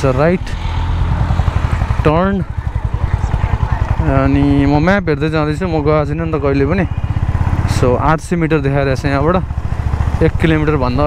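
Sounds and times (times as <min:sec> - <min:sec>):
man talking: 0:00.0 - 0:00.6, 0:02.0 - 0:07.0, 0:07.6 - 0:09.5, 0:10.2 - 0:11.0
motorcycle engine running: 0:00.0 - 0:11.0.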